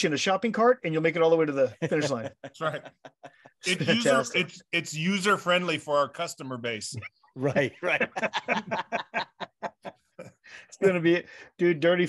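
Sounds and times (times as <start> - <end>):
man chuckling: 1.9 - 4.4, 7.5 - 10.4.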